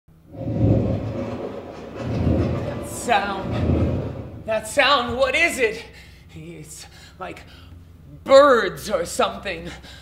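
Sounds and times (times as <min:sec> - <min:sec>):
eerie low rumbling sound effect: 0:00.2 - 0:04.6.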